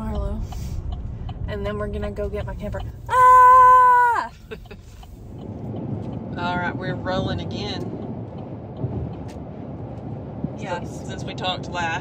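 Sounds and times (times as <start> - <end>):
road and engine noise in a vehicle: 0.0 - 12.0.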